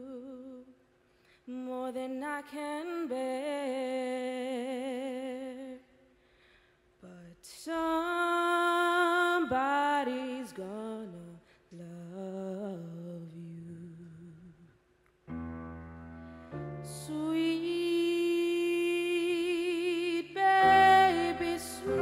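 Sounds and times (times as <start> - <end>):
woman singing a lullaby: 0.0 - 0.7, 1.5 - 5.8, 17.0 - 22.0.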